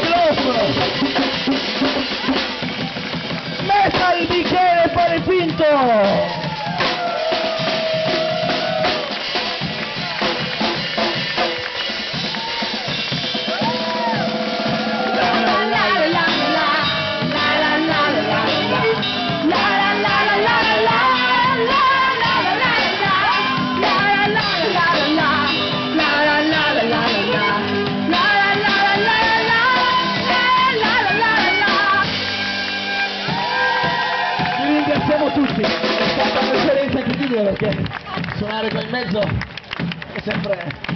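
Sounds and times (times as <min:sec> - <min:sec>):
drum beaten with a stick: 0:00.0 - 0:32.3
street band playing: 0:00.0 - 0:40.9
woman singing: 0:15.1 - 0:32.2.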